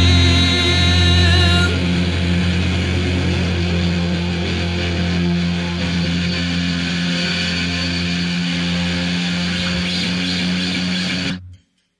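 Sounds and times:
bass: 0:00.0 - 0:11.6
distorted electric guitar drone: 0:00.0 - 0:11.6.

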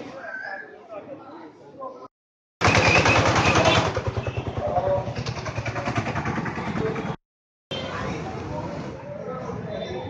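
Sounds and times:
motorcycle engine running: 0:02.6 - 0:07.2.

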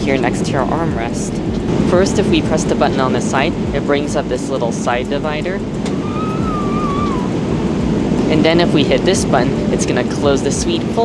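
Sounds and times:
airplane cabin roar: 0:00.0 - 0:11.0.

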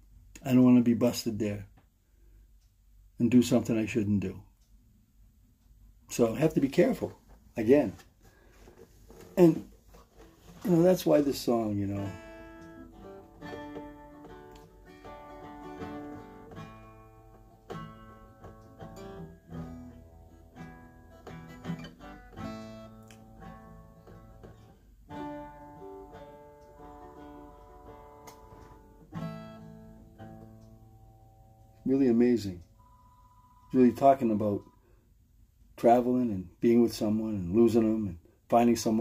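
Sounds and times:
quiet acoustic guitar: 0:06.1 - 0:35.0.

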